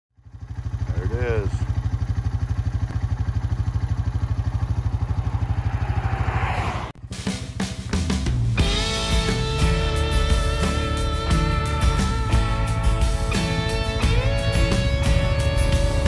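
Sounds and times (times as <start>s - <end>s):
vehicle engine idling: 0.2s - 16.0s
short rising-falling tone: 4.5s - 7.3s
music with drums and guitar: 7.0s - 16.0s.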